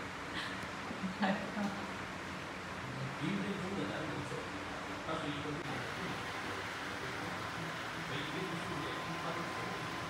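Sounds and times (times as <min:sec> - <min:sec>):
muffled voices murmuring: 0:02.8 - 0:10.0.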